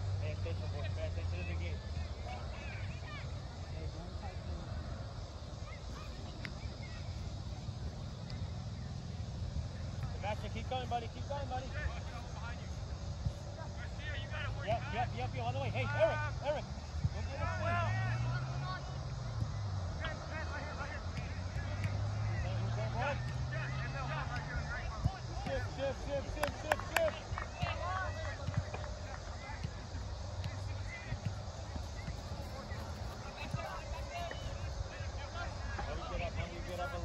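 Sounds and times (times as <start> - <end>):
players and spectators calling out: 0.3 - 37.0.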